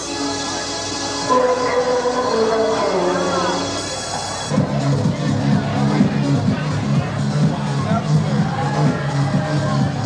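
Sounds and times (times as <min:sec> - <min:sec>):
loud dance music: 0:01.1 - 0:10.0.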